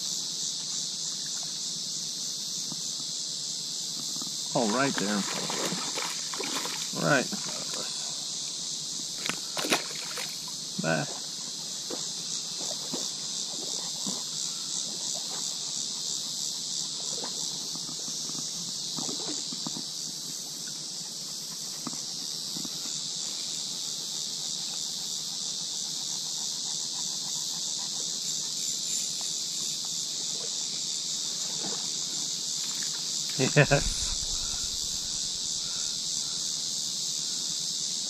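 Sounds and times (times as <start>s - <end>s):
insect chorus drone: 0.0s - 38.0s.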